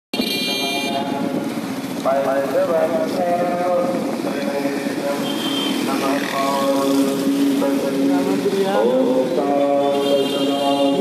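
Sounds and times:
vehicle horn: 0:00.2 - 0:01.1, 0:05.2 - 0:05.8, 0:09.8 - 0:11.0
wind noise: 0:00.2 - 0:07.7.

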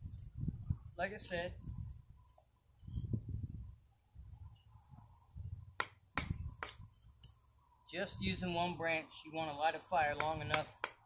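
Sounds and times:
wind gusts on microphone: 0:00.0 - 0:02.2, 0:02.8 - 0:06.9, 0:07.9 - 0:08.8
knife cracking dry palm branch: 0:05.8 - 0:07.4.

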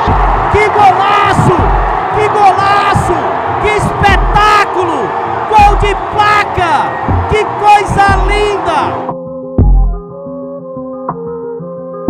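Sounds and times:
music with deep bass beat: 0:00.0 - 0:00.6, 0:01.5 - 0:02.1, 0:03.9 - 0:04.4, 0:07.0 - 0:07.4, 0:08.0 - 0:08.5, 0:09.5 - 0:10.2
stadium crowd noise: 0:00.0 - 0:09.1.

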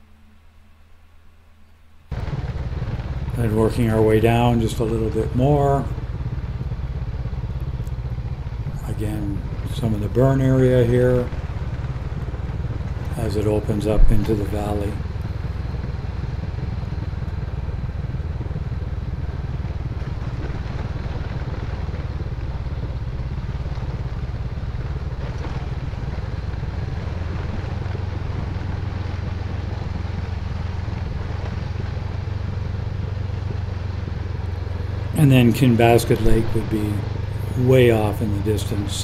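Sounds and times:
motorcycle engine at low revs: 0:02.1 - 0:39.0
tyres on gravel: 0:02.1 - 0:39.0.

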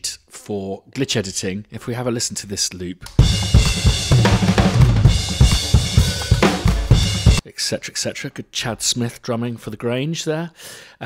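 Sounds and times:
drum kit loop: 0:03.0 - 0:07.4.

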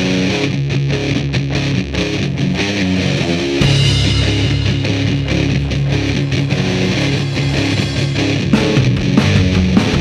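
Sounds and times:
distorted electric guitar riffing: 0:00.0 - 0:10.0
instrumental stoner rock: 0:00.0 - 0:10.0.

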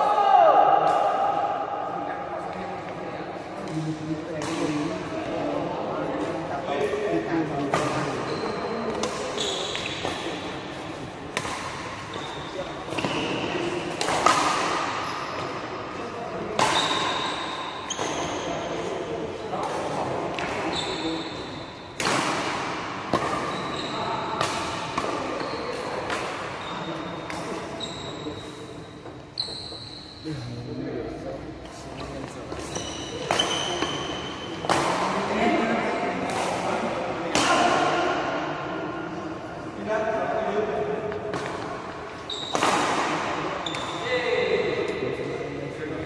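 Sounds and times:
badminton rackets hitting shuttlecock: 0:03.6 - 0:05.0, 0:07.6 - 0:15.8, 0:16.4 - 0:27.8, 0:32.4 - 0:38.4, 0:41.1 - 0:44.0
court shoes squeaking: 0:03.6 - 0:22.2, 0:23.1 - 0:31.0, 0:31.6 - 0:37.6, 0:41.1 - 0:45.0.

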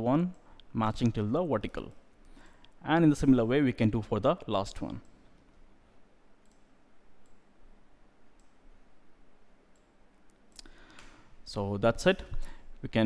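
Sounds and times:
low background hiss: 0:00.0 - 0:13.0
computer mouse clicks: 0:06.4 - 0:07.4, 0:08.3 - 0:08.6.

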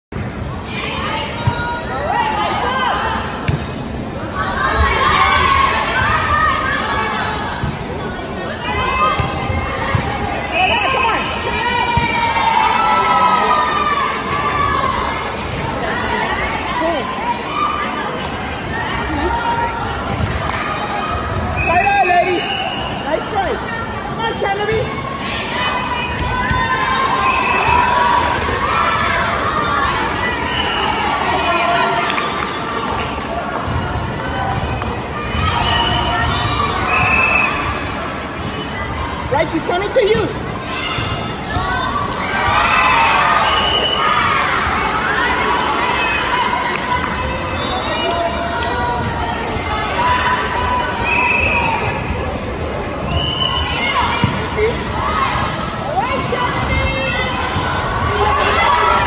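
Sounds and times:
spectators shouting: 0:53.2 - 0:59.0.

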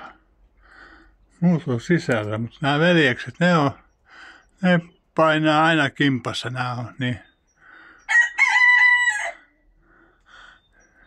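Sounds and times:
cockerel crowing: 0:07.7 - 0:09.6.

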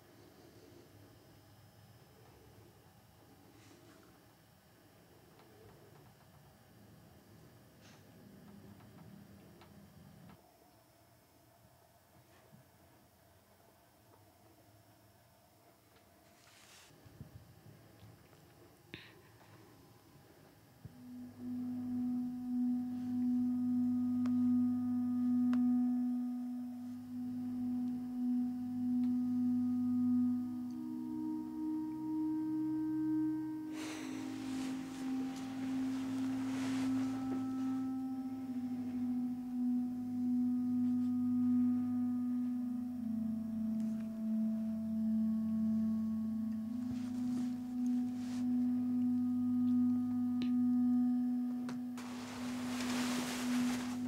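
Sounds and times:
low sustained drone: 0:19.0 - 0:54.0
held tones changing pitch: 0:20.8 - 0:54.0
soft rushing swell: 0:33.7 - 0:38.6, 0:52.0 - 0:54.0.

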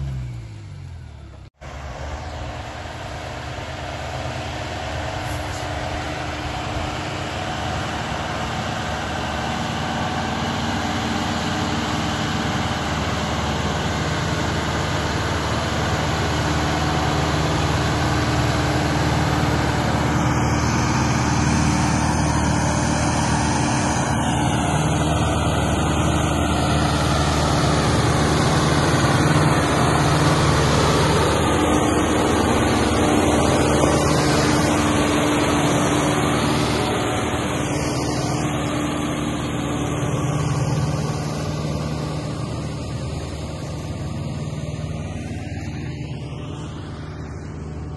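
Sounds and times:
tractor diesel engine running: 0:00.0 - 0:47.9.

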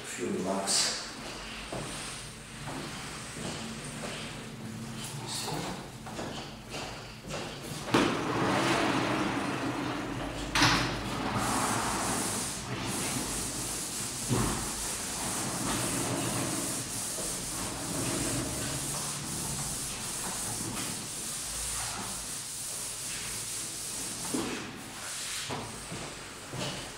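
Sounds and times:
wiper rubbing chalkboard: 0:01.2 - 0:26.9
chalkboard panels sliding on rails: 0:07.3 - 0:23.3.

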